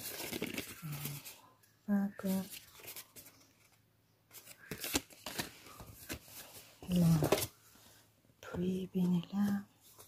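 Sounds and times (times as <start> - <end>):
cards shuffling: 0.0 - 1.3, 2.3 - 7.5.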